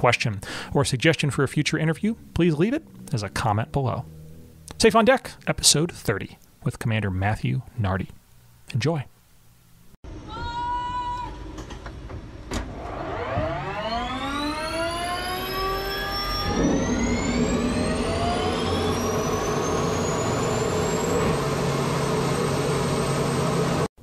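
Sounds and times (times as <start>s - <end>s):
turbine aircraft engine whining: 1.3s - 4.9s, 12.4s - 23.9s.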